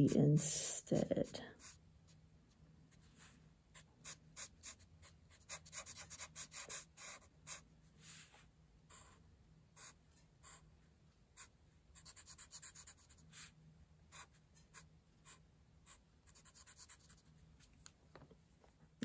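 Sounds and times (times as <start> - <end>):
marker scratching on paper: 0.0 - 2.2, 2.9 - 9.2, 9.8 - 10.7, 11.4 - 17.3.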